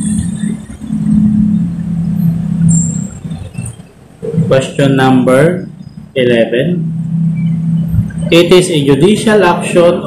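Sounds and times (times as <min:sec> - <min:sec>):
vehicle engine hum: 0:00.0 - 0:10.0
brief high squeak: 0:02.6 - 0:03.9.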